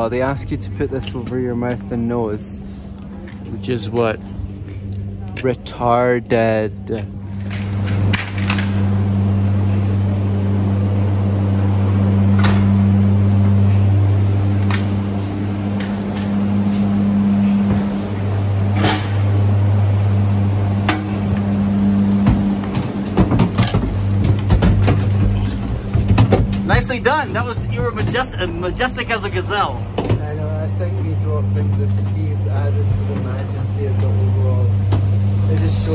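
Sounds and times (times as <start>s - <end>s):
machinery low hum: 0.0s - 35.9s.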